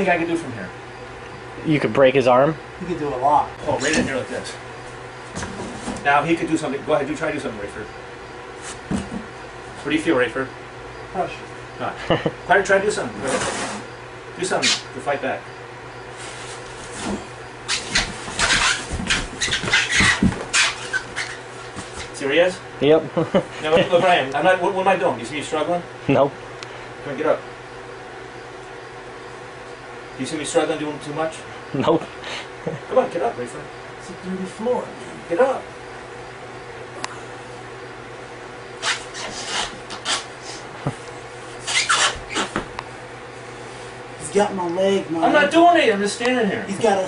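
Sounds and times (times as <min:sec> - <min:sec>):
body thumps on floor: 0:08.9 - 0:09.3, 0:17.9 - 0:20.6
heavy breathing: 0:32.1 - 0:32.6.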